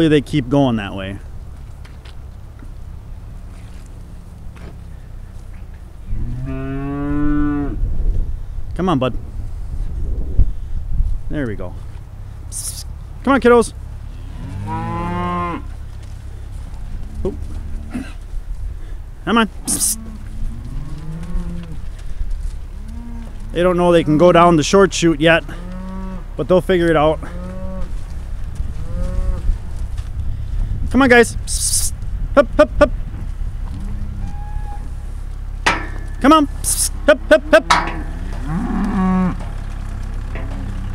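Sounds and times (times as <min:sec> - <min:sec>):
low rumble of cattle: 0:00.0 - 0:40.9
cattle mooing: 0:06.1 - 0:07.8, 0:14.1 - 0:15.8, 0:16.9 - 0:18.2, 0:19.6 - 0:22.0, 0:22.7 - 0:24.3, 0:25.4 - 0:26.3, 0:27.2 - 0:28.0, 0:28.7 - 0:29.6, 0:33.7 - 0:35.1, 0:36.6 - 0:40.9
man calling: 0:12.5 - 0:13.7, 0:19.2 - 0:20.1, 0:30.9 - 0:33.0, 0:36.1 - 0:38.0.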